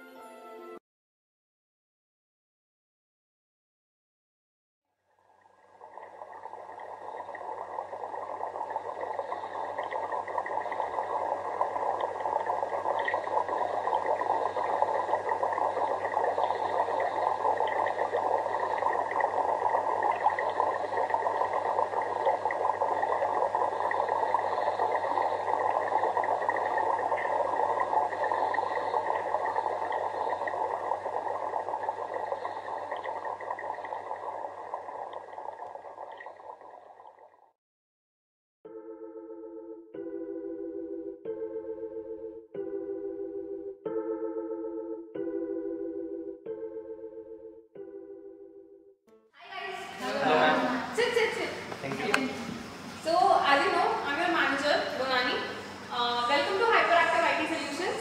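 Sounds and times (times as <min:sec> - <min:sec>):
water bubbling in fish tank: 0:05.1 - 0:37.6, 0:49.8 - 0:58.0.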